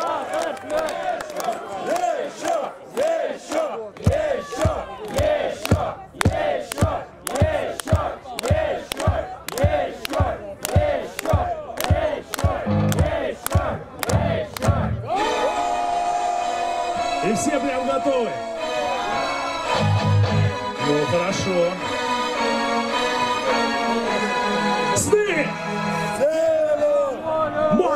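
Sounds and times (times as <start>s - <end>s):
male voices chanting battle cry: 0.0s - 15.5s
steady beat of sharp hits: 4.1s - 15.0s
held musical chord: 18.6s - 26.2s.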